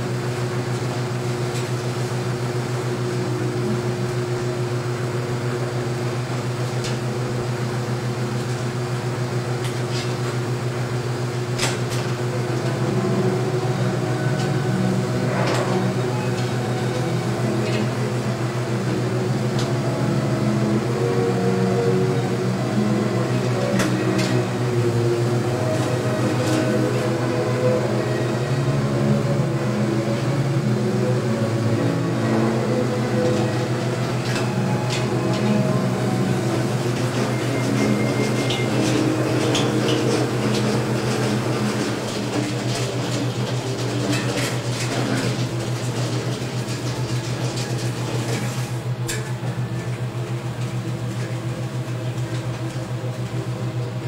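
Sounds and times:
projection equipment humming: 0.0 - 54.0
film reels clicking and knocking: 11.4 - 20.0, 22.8 - 28.4, 32.2 - 54.0.

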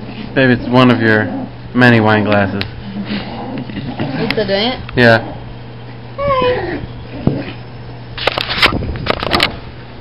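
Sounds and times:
dog whining: 6.1 - 7.7.

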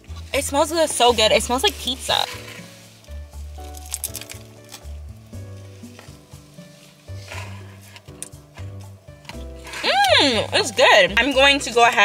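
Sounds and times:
soft music with bass line: 0.0 - 12.0
crunching and chewing: 3.6 - 4.8.

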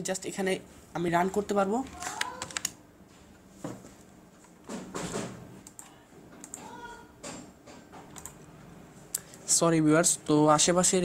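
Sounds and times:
person speaking: 0.0 - 2.8
keyboard keystrokes clicking: 8.1 - 8.4.

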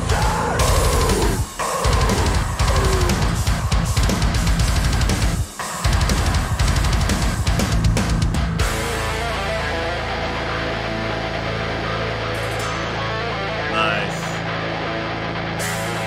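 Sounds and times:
drums: 0.0 - 16.0
heavy electric guitar chord: 8.6 - 16.0.

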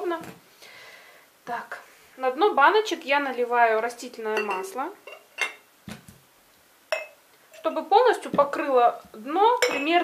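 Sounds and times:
glass clinking against glass: 4.4 - 5.6, 6.9 - 7.2, 9.6 - 10.0.

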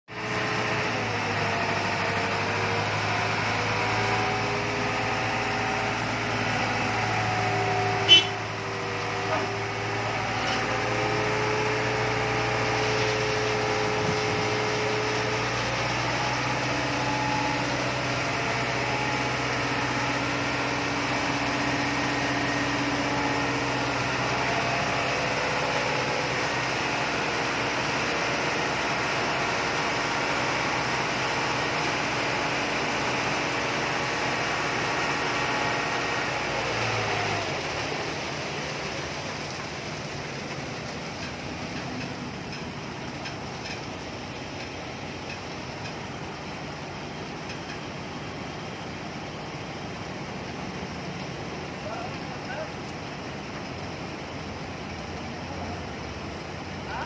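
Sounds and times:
heavy diesel engine running: 0.1 - 57.0
concrete pouring down chute: 9.5 - 47.4.

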